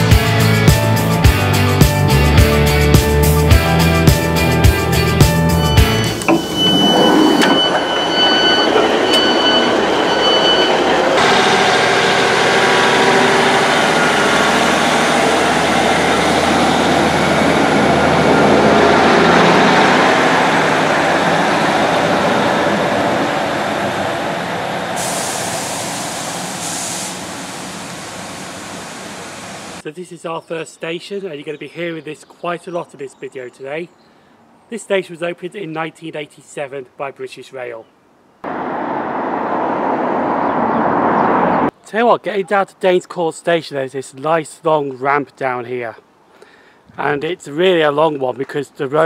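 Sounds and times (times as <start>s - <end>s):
door warning beeps: 5.6s - 11.2s
train engine running: 7.5s - 29.8s.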